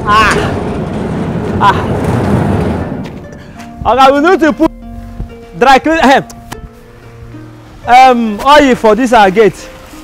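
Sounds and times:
metal gate rolling on track: 0.0s - 3.6s.

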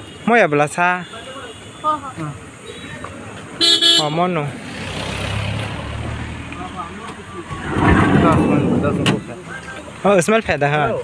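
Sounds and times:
vehicle horn toot: 3.6s - 4.2s.

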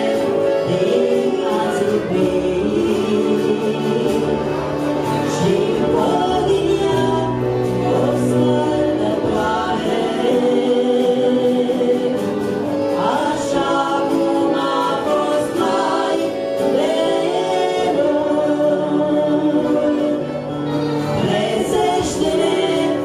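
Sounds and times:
group singing: 0.0s - 23.0s
musical backing: 0.0s - 23.0s.

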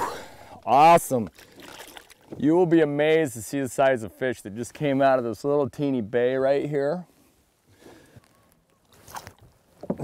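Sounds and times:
water splashes: 0.4s - 2.5s.

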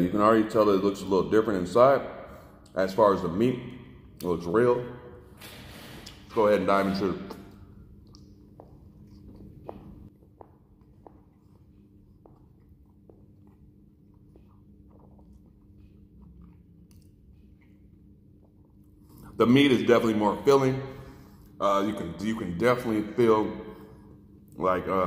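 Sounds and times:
low steady hum: 0.0s - 25.0s
man chewing: 7.3s - 19.4s.

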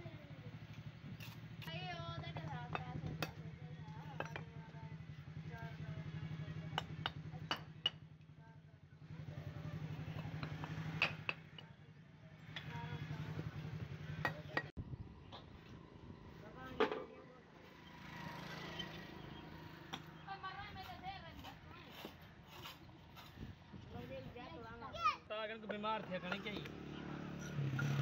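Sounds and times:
bricks clinking and knocking: 10.1s - 11.6s.

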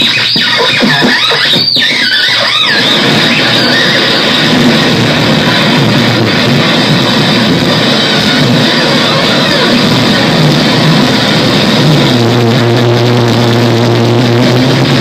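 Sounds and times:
distorted electronic noise: 0.0s - 15.0s.

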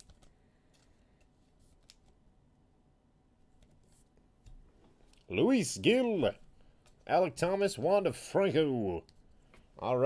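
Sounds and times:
trading card clicks and rustles: 0.0s - 2.2s.

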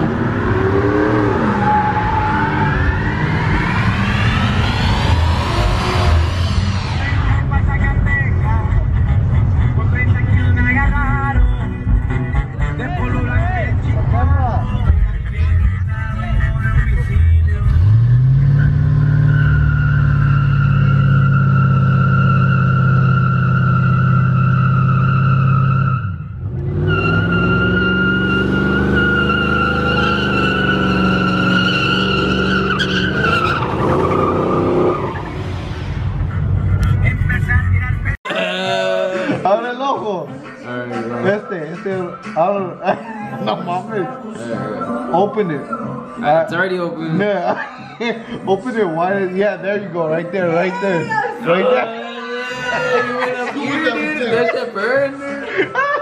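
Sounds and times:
car engine revving: 0.0s - 11.3s, 13.7s - 38.2s
tyres squealing: 26.9s - 35.3s.

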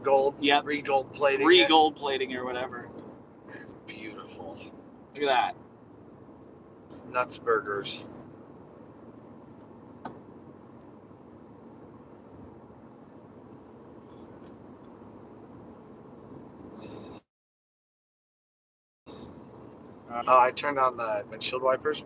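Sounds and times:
car cabin road and engine noise: 0.0s - 17.1s.

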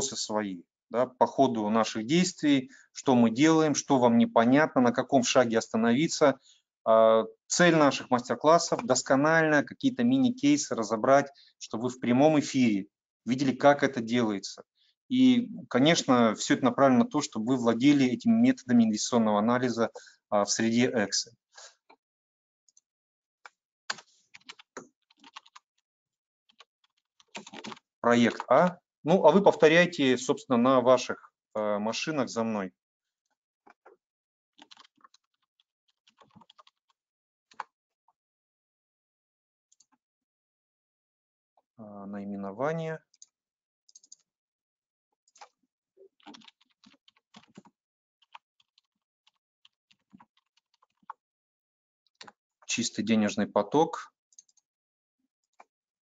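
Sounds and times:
typing on computer keyboard: 23.9s - 25.7s, 26.5s - 28.7s, 34.6s - 36.9s, 46.2s - 51.2s.

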